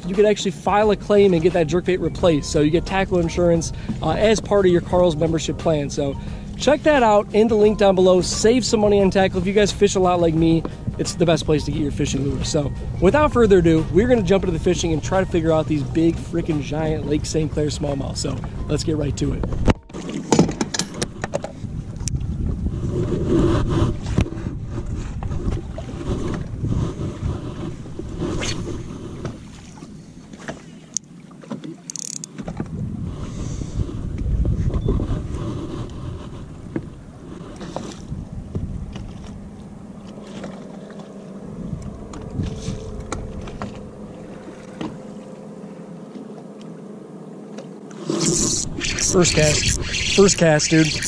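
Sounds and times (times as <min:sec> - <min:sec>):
water against boat hull: 0:00.0 - 0:32.9, 0:33.7 - 0:51.0
wind buffeting microphone: 0:21.0 - 0:29.6, 0:32.4 - 0:39.8, 0:41.4 - 0:45.0
gear knocks and clicks: 0:31.9 - 0:32.7.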